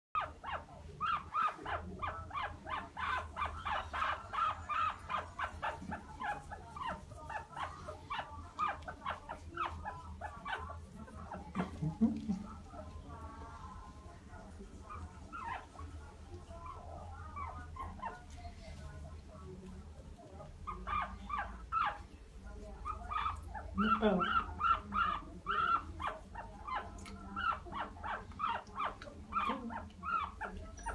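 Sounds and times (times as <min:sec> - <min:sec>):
guinea pig squeaking: 0:00.2 - 0:13.7, 0:14.4 - 0:30.9.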